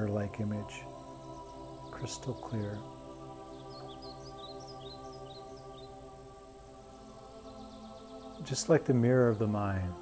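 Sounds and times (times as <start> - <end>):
ambient music with held tones: 0.0 - 10.0
high chirping notes: 0.0 - 10.0.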